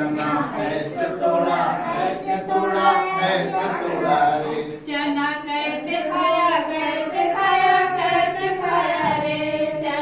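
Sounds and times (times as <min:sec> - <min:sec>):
women singing in unison: 0:00.0 - 0:10.0.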